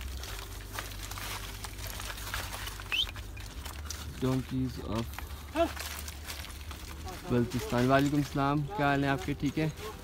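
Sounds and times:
hooves clattering over scree: 0:00.0 - 0:10.0
low steady rumble: 0:00.0 - 0:10.0
high rising chirp: 0:02.8 - 0:03.2.

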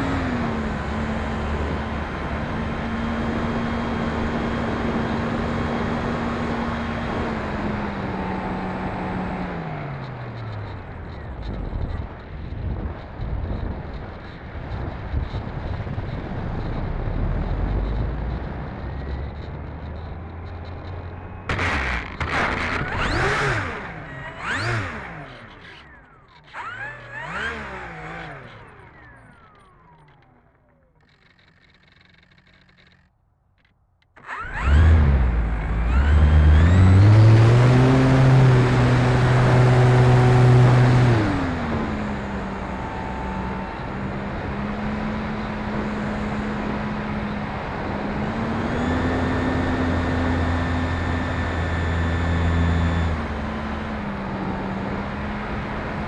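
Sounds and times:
electric motor and propeller whine: 0:00.0 - 0:56.0.

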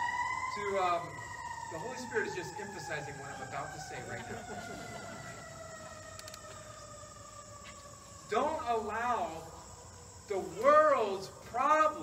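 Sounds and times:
distant siren: 0:00.0 - 0:12.0
insects chirping: 0:00.0 - 0:12.0.

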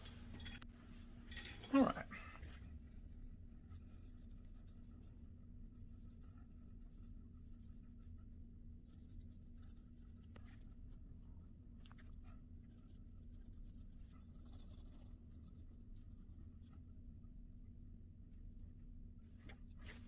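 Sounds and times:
steady low hum: 0:00.0 - 0:20.0
pencil scratching on paper: 0:02.5 - 0:11.3, 0:12.2 - 0:16.8.

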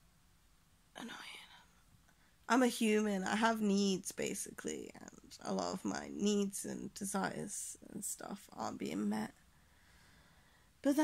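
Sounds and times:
woman whispering a word: 0:01.0 - 0:01.7.

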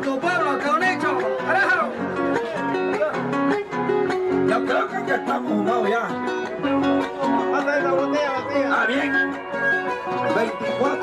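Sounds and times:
acoustic guitar plucking and strumming: 0:00.0 - 0:11.0
wavering melodic line: 0:01.0 - 0:11.0.

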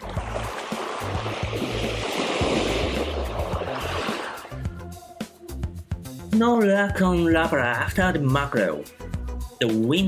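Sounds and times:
surf waves breaking: 0:00.0 - 0:04.7
background music with beat: 0:00.0 - 0:10.0.

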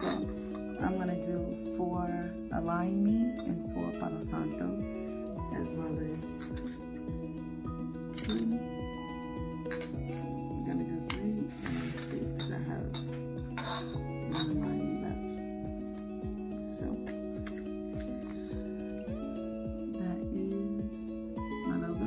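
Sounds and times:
glass jars clinking: 0:00.0 - 0:00.9, 0:06.2 - 0:07.0, 0:08.1 - 0:08.7, 0:09.6 - 0:15.2
background music: 0:00.0 - 0:22.0.

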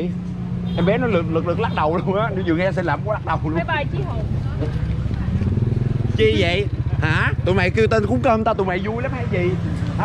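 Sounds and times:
motorbike engine running: 0:03.2 - 0:10.0
faint crowd chatter: 0:03.3 - 0:08.2.

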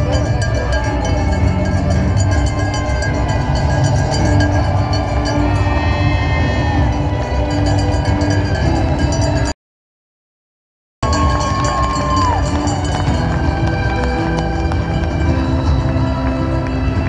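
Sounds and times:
crowd noise rumble: 0:00.0 - 0:09.5, 0:11.0 - 0:17.0
music over loudspeakers: 0:00.0 - 0:09.5, 0:11.0 - 0:17.0.

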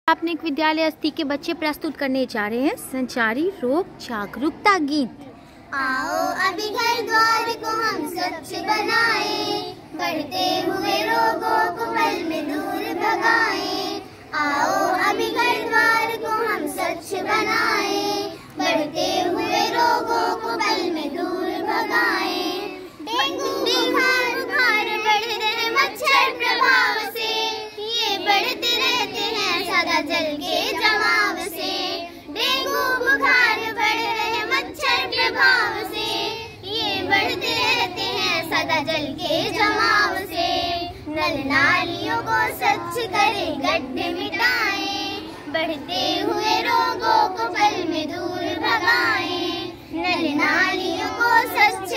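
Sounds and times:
girls singing together: 0:05.7 - 0:51.9.

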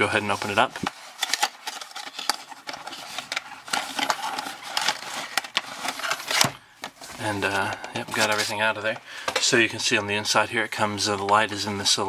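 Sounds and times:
scraping and rustling: 0:00.1 - 0:09.4.

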